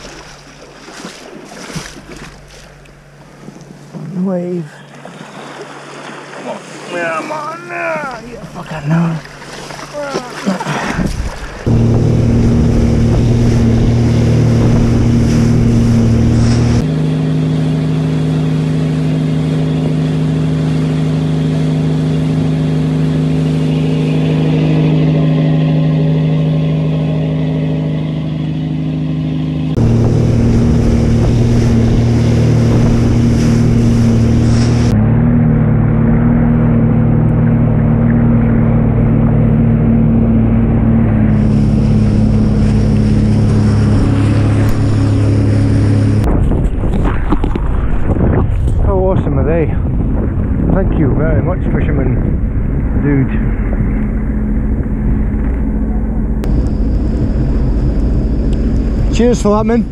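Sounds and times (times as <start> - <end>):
boat engine droning: 0.0 - 59.9
rushing wake water: 0.0 - 59.9
wind on microphone: 10.9 - 16.8, 29.8 - 35.0, 37.1 - 59.9.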